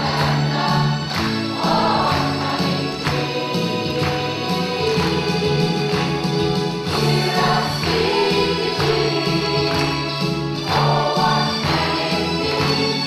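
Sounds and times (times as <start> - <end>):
mixed choir singing: 0.0 - 13.0.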